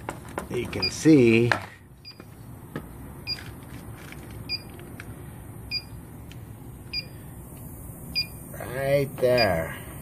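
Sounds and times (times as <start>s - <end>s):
gas detector two-tone chirp: 5.7s - 6.0s, 6.9s - 7.2s, 8.1s - 8.4s.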